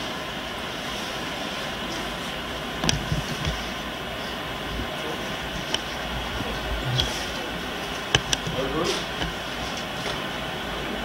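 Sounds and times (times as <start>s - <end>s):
camcorder hiss and rumble: 0.0s - 11.0s.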